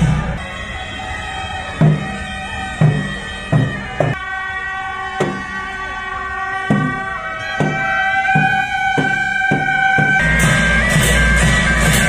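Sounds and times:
reedy horns: 0:00.0 - 0:12.0.

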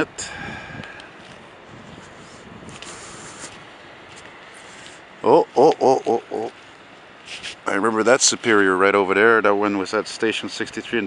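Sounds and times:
outdoor background noise: 0:00.0 - 0:11.0
faint soft clicks: 0:00.8 - 0:01.4.

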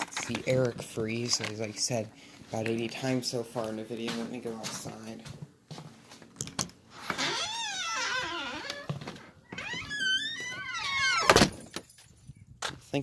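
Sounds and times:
door hinges creaking: 0:06.4 - 0:11.8
door banging shut: 0:09.7 - 0:11.8.

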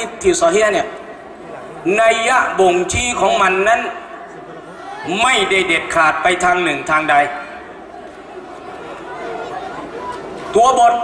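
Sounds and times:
man lecturing through microphone: 0:00.0 - 0:01.0, 0:01.6 - 0:04.2, 0:05.1 - 0:07.6, 0:10.5 - 0:11.0.

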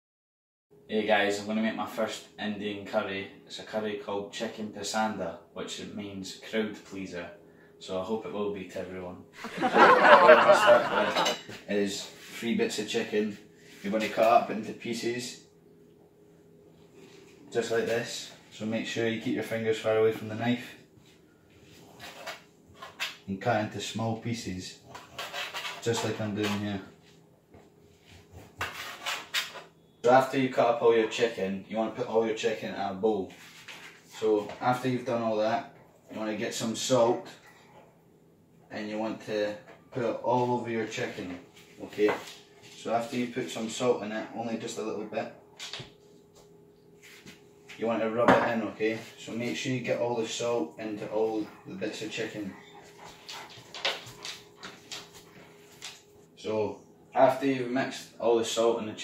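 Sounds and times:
dog panting: 0:51.3 - 0:55.8.

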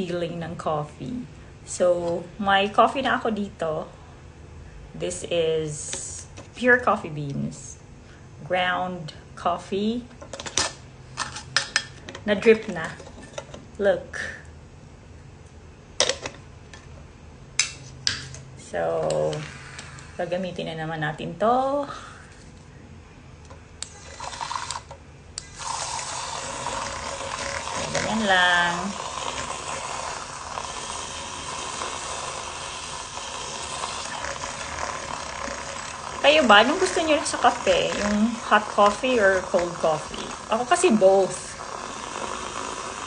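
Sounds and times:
electric milk frother whirring: 0:18.9 - 0:21.2, 0:23.8 - 0:43.0.

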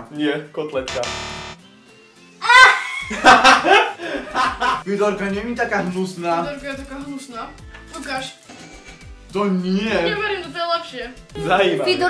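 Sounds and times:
buzzing wrong answer sting: 0:00.9 - 0:01.6.

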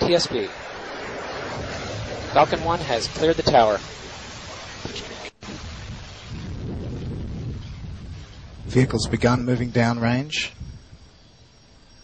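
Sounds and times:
rocket engine rumble: 0:00.0 - 0:12.0.

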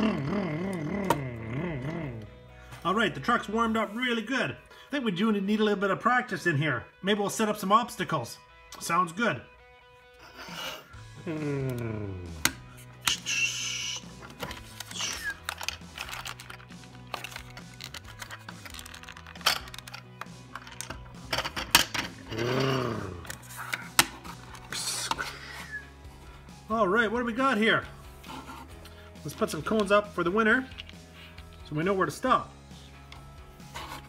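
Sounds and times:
background music: 0:00.0 - 0:34.0
plastic toy parts clicking: 0:14.4 - 0:22.1.

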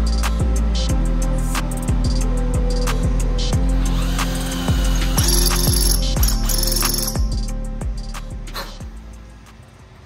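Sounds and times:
music with heavy bass beat: 0:00.0 - 0:09.5
cordless drill cutting metal: 0:03.7 - 0:07.3.

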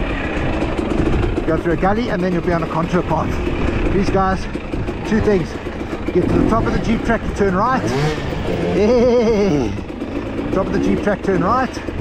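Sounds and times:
dirt bike engine running: 0:00.0 - 0:12.0
man laughing: 0:06.3 - 0:09.9.

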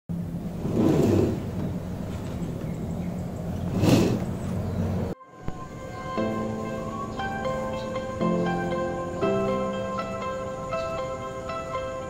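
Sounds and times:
low mechanical rumble: 0:00.1 - 0:05.2
plucked-string background music: 0:05.2 - 0:12.0.

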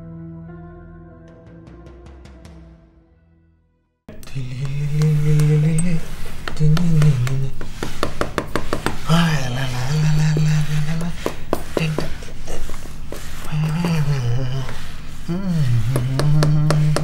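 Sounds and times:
low voice humming or moaning: 0:04.1 - 0:07.8, 0:09.0 - 0:17.0.

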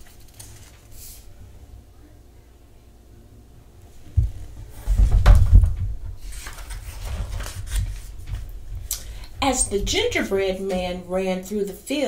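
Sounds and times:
pages turning: 0:00.0 - 0:01.2, 0:06.2 - 0:08.5.

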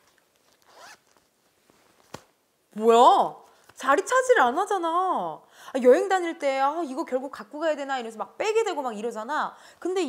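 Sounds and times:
zipper being pulled shut: 0:00.5 - 0:01.2.

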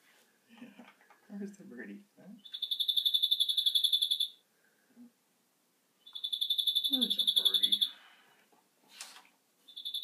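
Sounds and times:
recorded bird trill from speaker: 0:02.4 - 0:04.4, 0:06.0 - 0:08.0, 0:09.7 - 0:10.0.

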